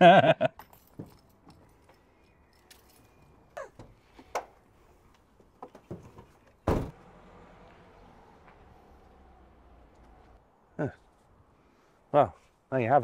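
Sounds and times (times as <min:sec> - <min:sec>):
van door clicks and knocks: 0:05.8 - 0:07.0
loud thump: 0:06.7 - 0:07.0.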